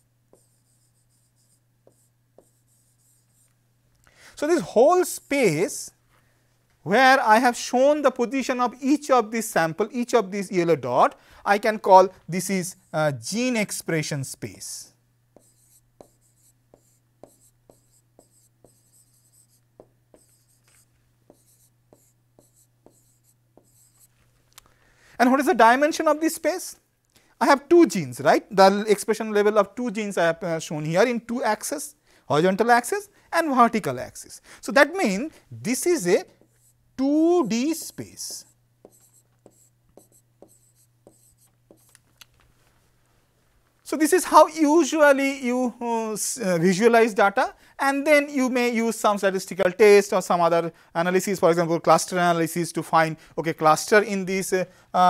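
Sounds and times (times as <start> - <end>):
steady low hum: 0.0 - 7.5, 8.8 - 25.8, 26.8 - 44.6
stylus scratching strokes: 0.4 - 3.6, 15.4 - 24.2, 35.8 - 36.8, 37.4 - 42.0
stylus tapping on screen: 37.8 - 42.0.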